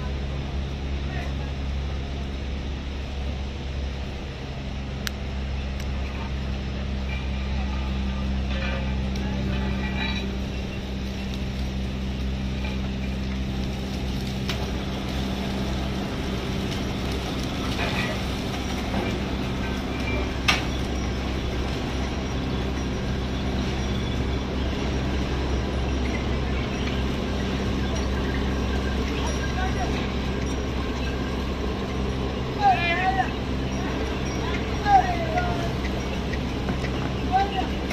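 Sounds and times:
heavy machinery hum: 0.0 - 37.9.

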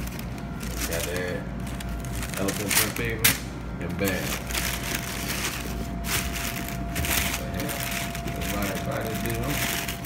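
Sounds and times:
tissue paper rustling: 4.0 - 10.0.

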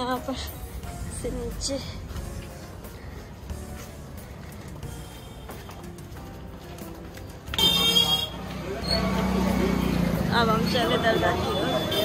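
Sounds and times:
low street background: 0.0 - 12.0
vehicle horn honk: 7.6 - 8.4, 10.9 - 12.0.

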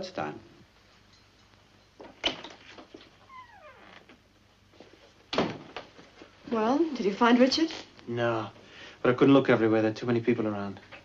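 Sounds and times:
door squeak: 2.2 - 4.2
door closing thump: 5.3 - 5.8.

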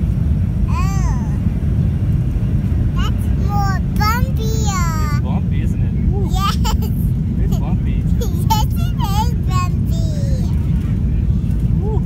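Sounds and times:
airplane cabin rumble: 0.0 - 12.0
toddler high-pitched vocal sound: 0.7 - 1.4, 3.0 - 5.2, 8.2 - 10.5.

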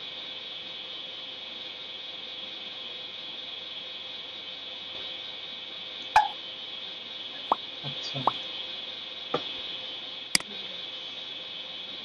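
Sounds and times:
pop sound effects: 6.2 - 6.4.

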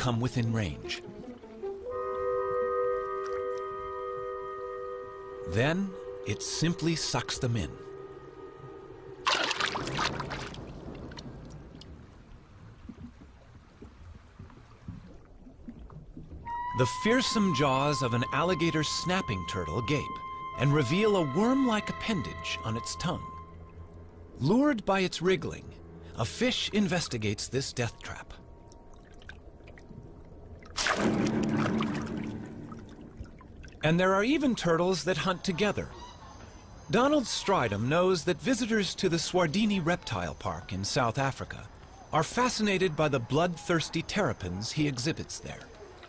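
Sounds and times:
steady music tone: 0.3 - 9.2, 16.5 - 27.1
rush of water: 9.2 - 16.5, 30.7 - 34.6
faint underwater noise: 27.8 - 37.6.

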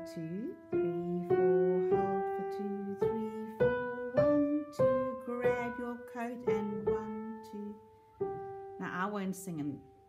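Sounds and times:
slow piano melody: 0.0 - 10.0.

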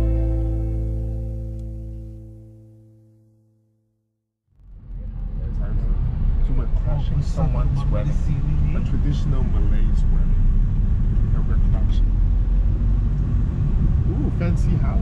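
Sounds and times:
van road and engine rumble: 0.0 - 2.5, 4.5 - 15.0
men talking: 5.4 - 10.4, 14.2 - 15.0.

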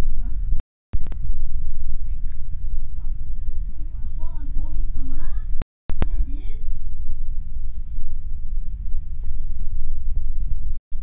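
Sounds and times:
loud steady low rumble: 0.0 - 11.0.

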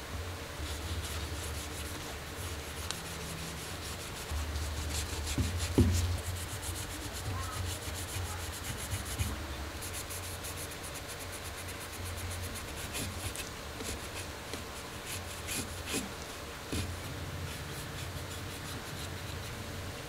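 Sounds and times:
cloth wiping metal: 0.6 - 19.6.

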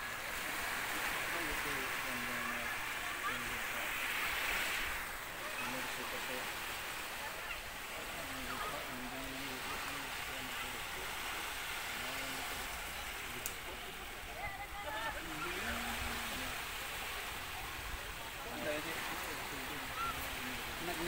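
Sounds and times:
men talking in background: 0.0 - 21.0
small waves washing onto sand: 0.0 - 21.0.

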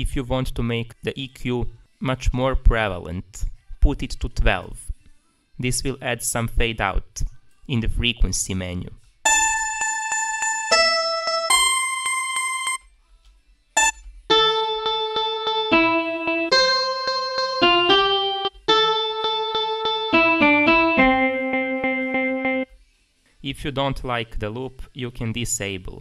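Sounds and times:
sampled acoustic guitar melody: 9.3 - 12.8, 14.3 - 22.6.

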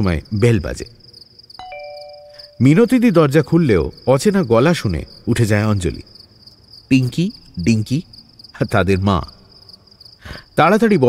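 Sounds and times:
crickets chirping: 0.0 - 11.0
people talking: 2.6 - 6.0, 10.6 - 11.0.

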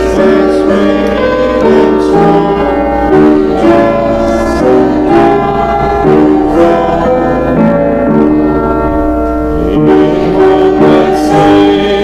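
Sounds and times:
congregation singing a hymn: 0.0 - 12.0
piano accompaniment: 0.0 - 12.0.

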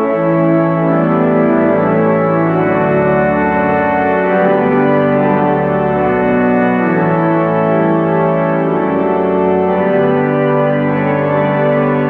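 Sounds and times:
organ playing held chords: 0.0 - 12.0.

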